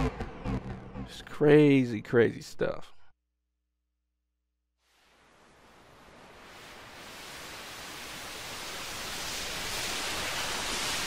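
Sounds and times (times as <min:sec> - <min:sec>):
synthesized wind and surf noise: 0:04.8 - 0:11.0.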